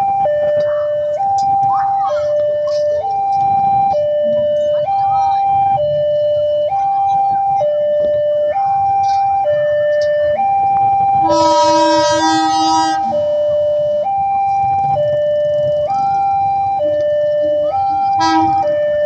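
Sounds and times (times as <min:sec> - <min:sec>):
two-tone crossing alarm: 0:00.0 - 0:19.0
locomotive horn blast: 0:11.2 - 0:13.2, 0:18.2 - 0:18.7.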